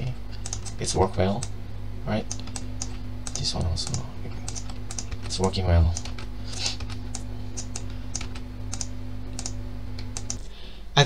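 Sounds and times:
low electrical hum: 0.0s - 11.0s
mouse and keyboard clicks: 0.4s - 0.8s, 2.3s - 5.3s, 5.9s - 10.4s.

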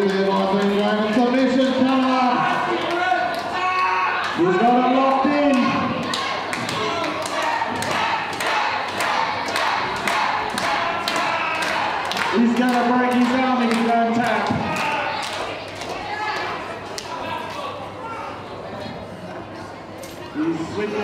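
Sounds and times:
crowd shouting: 1.9s - 12.5s, 14.2s - 18.4s.

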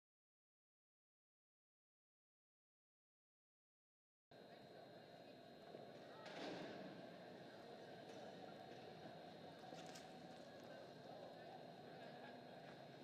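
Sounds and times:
low steady murmur: 4.4s - 13.0s.

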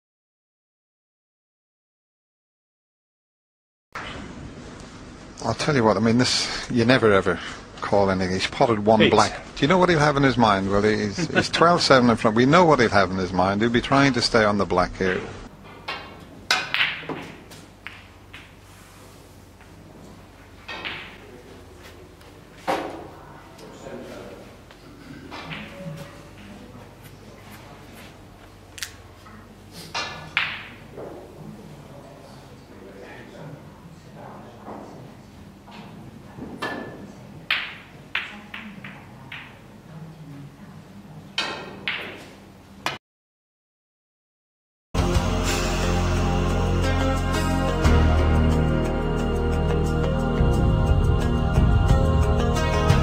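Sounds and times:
snooker balls clicking: 15.1s - 18.6s, 30.0s - 31.1s, 37.5s - 39.7s
cue striking ball: 15.9s - 18.6s, 20.6s - 21.2s, 30.0s - 31.2s, 36.6s - 39.6s, 41.4s - 43.0s.

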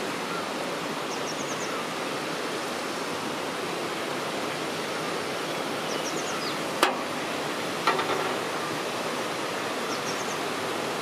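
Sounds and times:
sharp knocks: 6.8s - 7.1s, 7.8s - 8.5s.

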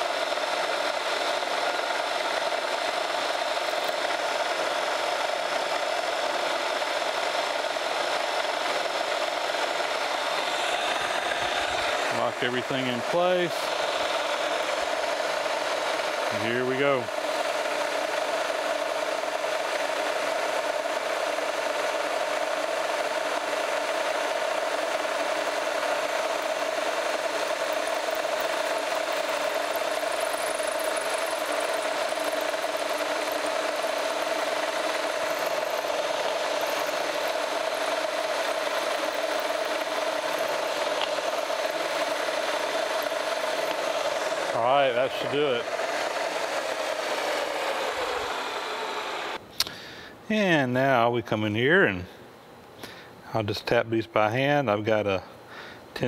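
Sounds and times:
drill bit rasping through metal: 0.0s - 49.4s
drill press humming: 0.0s - 50.1s.

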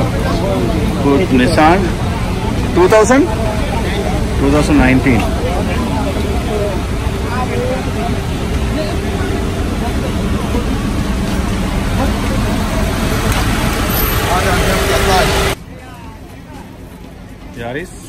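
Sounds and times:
crowd babble: 0.0s - 18.0s
low vehicle noise: 0.0s - 18.0s.

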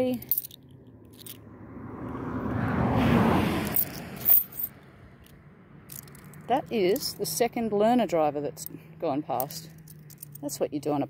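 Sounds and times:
coins clicking: 0.0s - 1.4s, 3.6s - 6.5s, 9.4s - 10.5s
car driving past: 0.6s - 6.5s.

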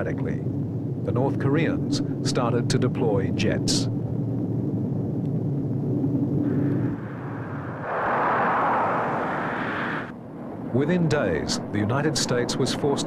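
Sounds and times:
jet aircraft engine: 5.6s - 11.8s.

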